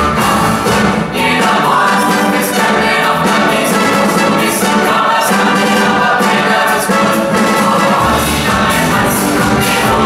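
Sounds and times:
big band playing: 0:00.0 - 0:10.0
mixed choir singing: 0:00.0 - 0:10.0.

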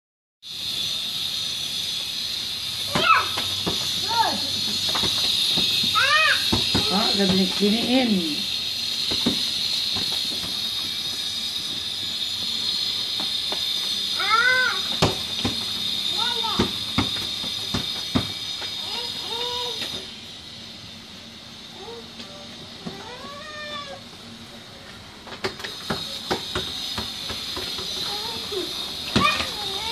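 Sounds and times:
steady high-pitched hiss: 0:00.5 - 0:29.9
toddlers squealing: 0:02.8 - 0:04.7, 0:05.5 - 0:08.4, 0:14.1 - 0:15.0, 0:18.7 - 0:20.1, 0:22.9 - 0:24.1, 0:27.9 - 0:29.9
ball knocking on tiled floor: 0:02.9 - 0:03.9, 0:04.8 - 0:07.6, 0:09.0 - 0:10.6, 0:14.9 - 0:15.7, 0:16.6 - 0:18.4, 0:25.4 - 0:28.2
small footsteps on tiled floor: 0:09.0 - 0:13.9.

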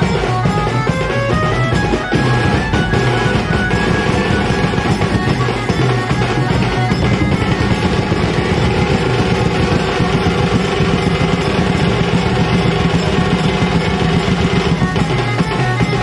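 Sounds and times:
melody over drumming: 0:00.0 - 0:16.0
street band drumming: 0:00.0 - 0:16.0.

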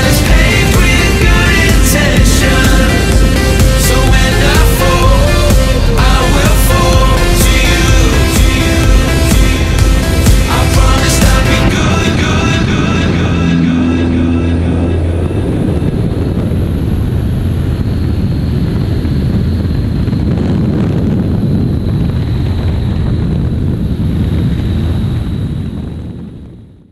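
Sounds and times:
music: 0:00.0 - 0:16.4
air rushing: 0:00.0 - 0:26.8
propeller plane engine droning: 0:00.0 - 0:26.9.

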